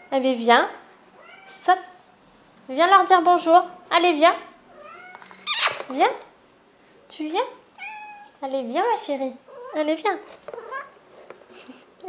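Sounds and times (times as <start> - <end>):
cat meowing: 1.2 - 1.6, 4.7 - 5.8, 7.8 - 8.4, 10.5 - 11.0.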